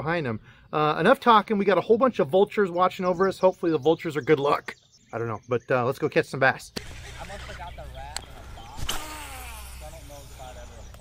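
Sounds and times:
spinning spool whine: 6.8s - 11.0s.

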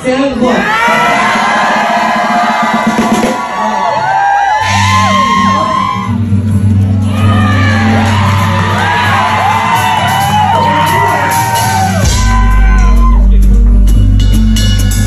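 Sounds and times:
crowd shouting and whooping: 0.3s - 13.5s
live rock band playing: 4.5s - 15.0s
deep bass note: 12.0s - 15.0s.

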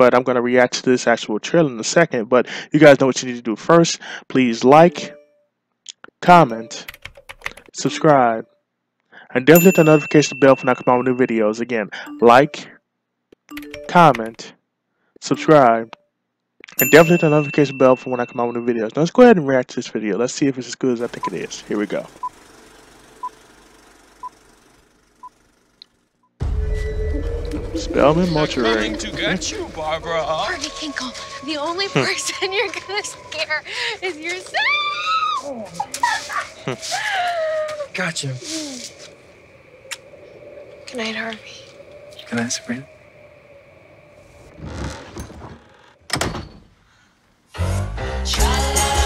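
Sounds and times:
timer beeping: 4.8s - 5.4s, 9.6s - 11.4s, 12.0s - 12.7s, 13.5s - 14.2s
swell of noise: 26.4s - 33.7s.

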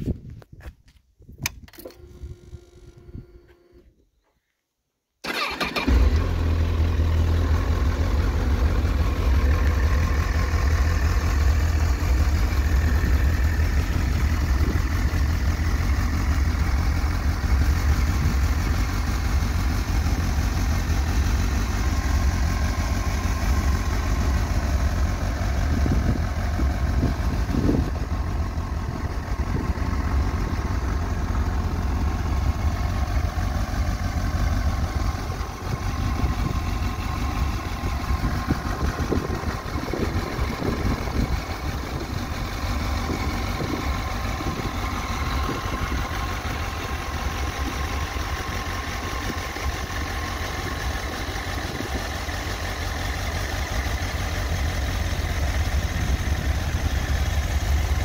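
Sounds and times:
motorcycle electric starter: 1.4s - 3.9s, 5.2s - 6.4s
motorcycle engine idling: 5.3s - 58.0s.

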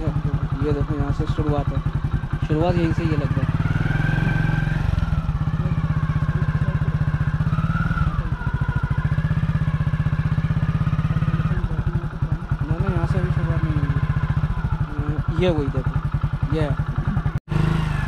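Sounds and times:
motorcycle engine running at low revs: 0.0s - 18.0s.

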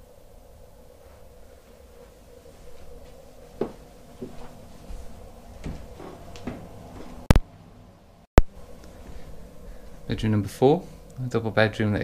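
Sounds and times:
faint room hum: 0.0s - 12.0s
footsteps on carpet: 1.0s - 7.3s, 9.0s - 9.3s.

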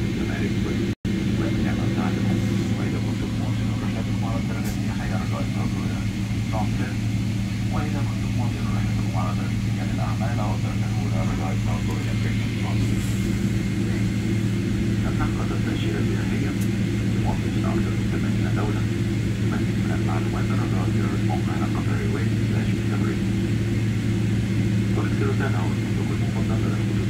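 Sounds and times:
airplane cabin engine drone: 0.0s - 27.0s
faint indistinct voices: 1.4s - 7.0s, 7.7s - 14.2s, 15.0s - 18.9s, 25.0s - 27.0s.

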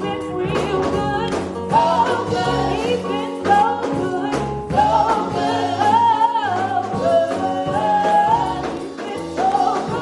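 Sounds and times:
amplified instrumental backing: 0.0s - 10.0s
women singing gospel: 0.0s - 10.0s.

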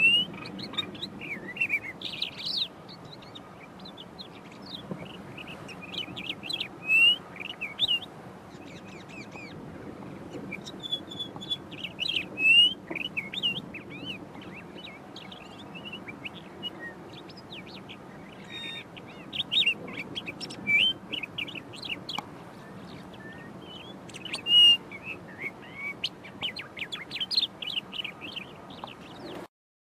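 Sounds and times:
lark singing chirps and whistles: 0.0s - 9.6s, 10.3s - 29.4s
low background noise: 0.0s - 29.5s.

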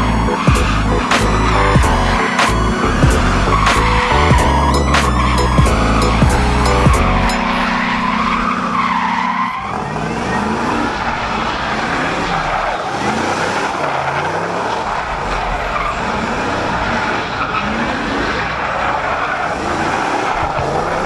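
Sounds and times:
car engine revving: 0.0s - 21.0s
tires screeching on pavement: 0.0s - 21.0s.

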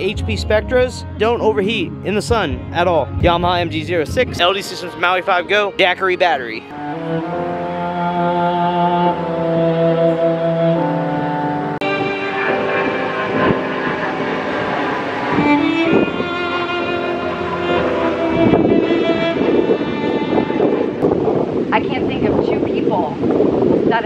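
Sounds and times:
slow string music: 0.0s - 21.7s
rushing noise: 11.8s - 24.0s.

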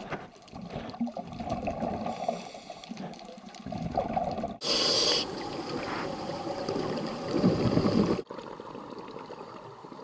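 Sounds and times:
water gurgling and bubbling: 0.6s - 2.4s, 3.6s - 4.6s, 5.2s - 9.2s
loud hiss: 4.6s - 5.4s.

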